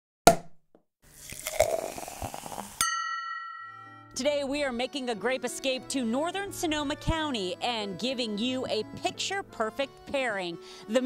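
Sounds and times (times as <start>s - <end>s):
sharp knock: 0.3s - 0.6s
ringing glass strike: 2.8s - 4.1s.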